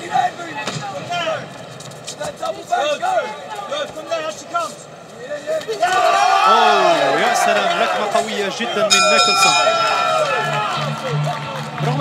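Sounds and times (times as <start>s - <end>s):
arena noise: 0.0s - 12.0s
voices shouting: 5.2s - 12.0s.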